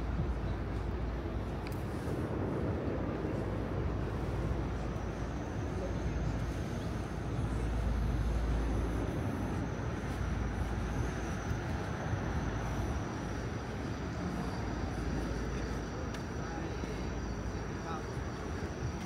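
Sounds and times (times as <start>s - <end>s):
city road traffic rumble: 0.0s - 19.0s.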